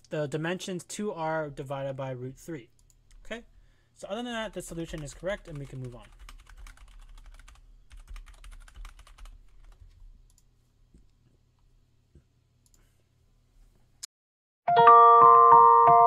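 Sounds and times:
typing on a keyboard: 0:04.5 - 0:10.4.

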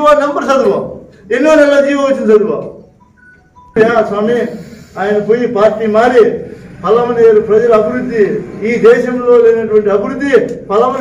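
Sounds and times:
man speaking: 0:00.0 - 0:02.8, 0:03.8 - 0:11.0
short high electronic tones: 0:02.8 - 0:04.9.

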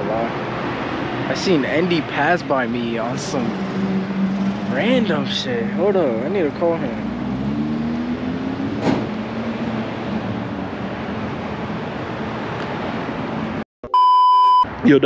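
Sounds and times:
low hum of traffic: 0:00.0 - 0:13.6
electronic beep: 0:13.8 - 0:14.7.

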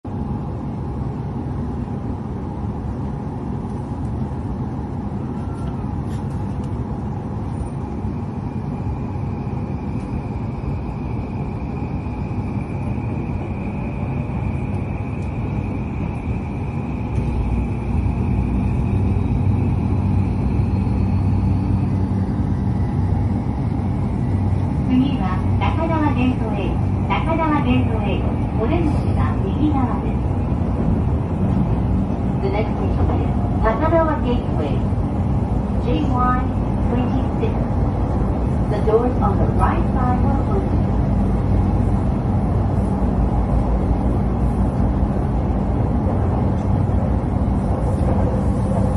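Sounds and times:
train running rumble: 0:00.0 - 0:48.9
faint high whine: 0:07.5 - 0:30.5
onboard announcement: 0:24.8 - 0:30.5, 0:32.2 - 0:35.0, 0:35.7 - 0:37.8, 0:38.5 - 0:40.8.

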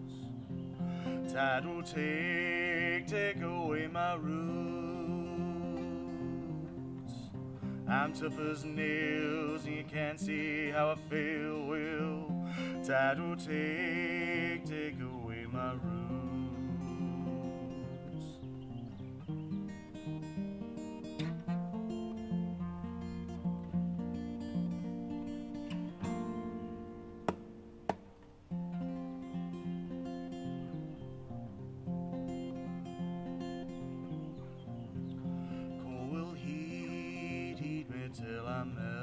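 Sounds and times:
acoustic guitar finger-picking: 0:00.0 - 0:39.0.

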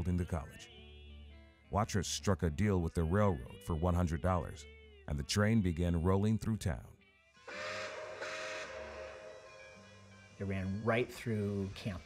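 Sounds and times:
steam locomotive whistle: 0:07.4 - 0:11.2
steam hissing: 0:07.5 - 0:09.5.

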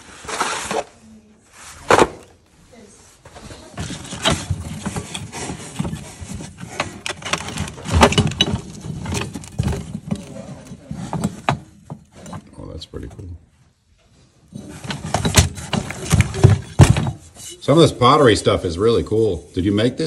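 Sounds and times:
pottery and metal tray clinks: 0:03.6 - 0:13.2, 0:14.5 - 0:17.6.

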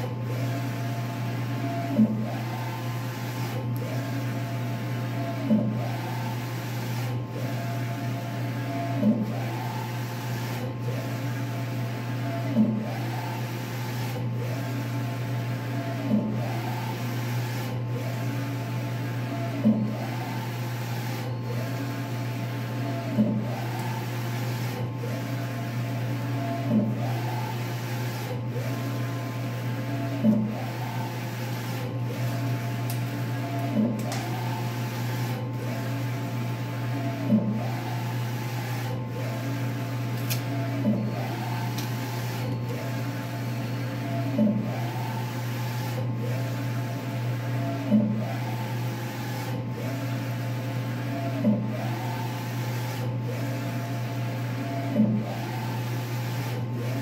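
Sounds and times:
printer carriage motor whining: 0:00.0 - 0:57.0.

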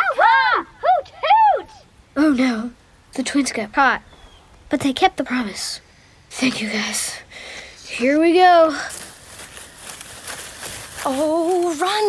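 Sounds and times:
rustling hiss: 0:00.0 - 0:12.0
running footsteps through undergrowth: 0:08.0 - 0:12.0.

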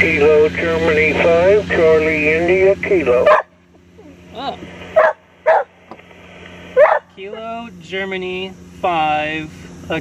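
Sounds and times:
dog barking: 0:03.2 - 0:03.5, 0:05.0 - 0:05.7, 0:06.8 - 0:07.1.

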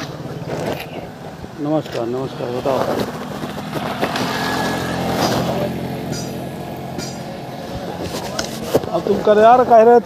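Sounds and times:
motorcycle engine idling: 0:00.0 - 0:08.6.

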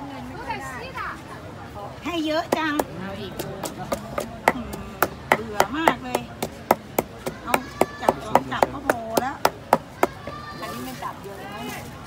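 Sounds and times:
wooden pestle pounding in mortar: 0:02.4 - 0:10.5.

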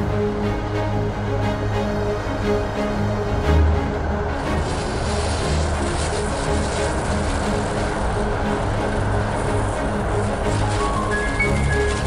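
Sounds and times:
soundtrack music: 0:00.0 - 0:12.0
steady low rumble: 0:00.0 - 0:12.0.

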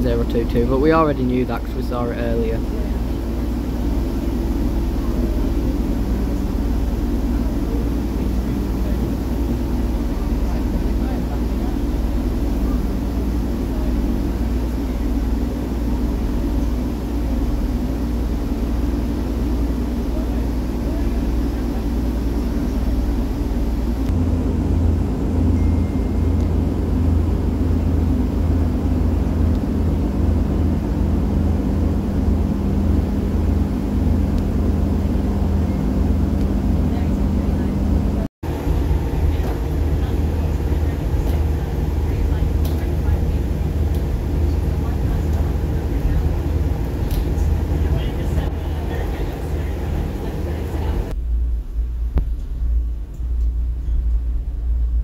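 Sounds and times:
train diesel engine hum: 0:00.0 - 0:55.0.

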